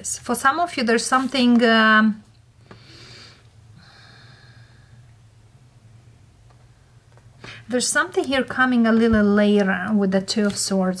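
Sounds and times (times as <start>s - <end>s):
low steady hum: 0.0s - 11.0s
woman breathing: 2.6s - 5.3s, 6.6s - 7.7s.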